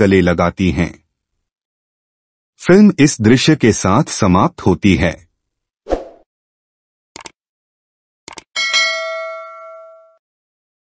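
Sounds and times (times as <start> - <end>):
notification bell chime: 8.6 - 10.2.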